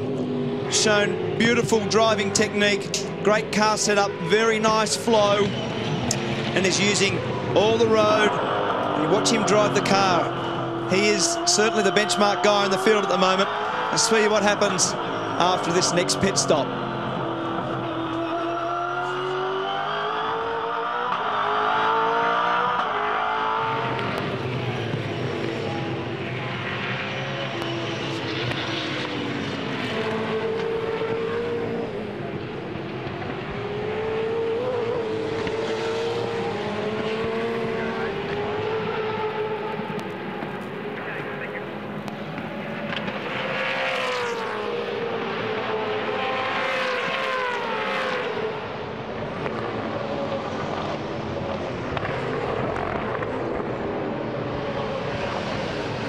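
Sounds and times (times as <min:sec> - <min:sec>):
race car engine upshifting: 0:00.0 - 0:56.0
race cars passing by: 0:00.0 - 0:56.0.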